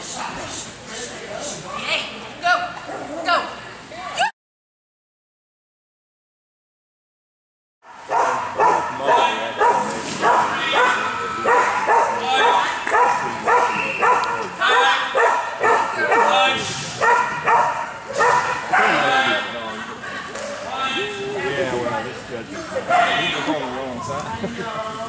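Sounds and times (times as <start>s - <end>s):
dog barking: 7.9s - 19.2s.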